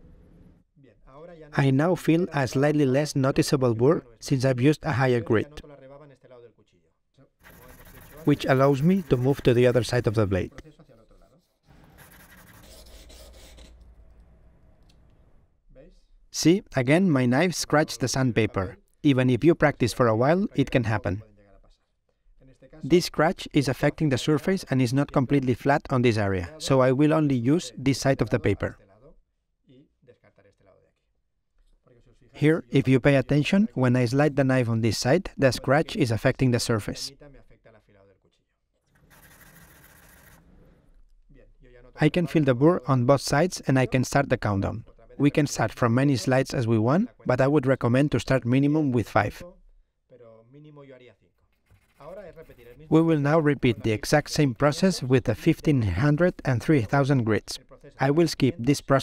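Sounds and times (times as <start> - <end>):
blade scraping on sandpaper: 7.4 - 9.8.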